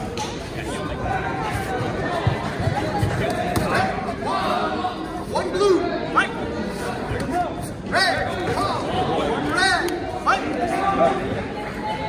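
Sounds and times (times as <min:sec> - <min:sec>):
spectators talking and shouting: 0:00.0 - 0:12.0.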